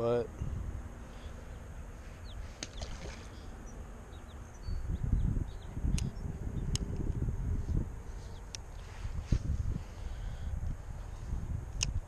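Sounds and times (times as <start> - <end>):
faint bird chirps: 0.3 - 6.7
wind buffeting microphone: 0.3 - 12.0.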